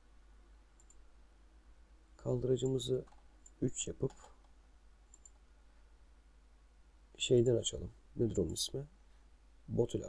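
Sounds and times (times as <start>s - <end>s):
low steady hum: 0.0s - 10.0s
computer mouse click: 0.8s - 1.0s, 3.0s - 5.4s.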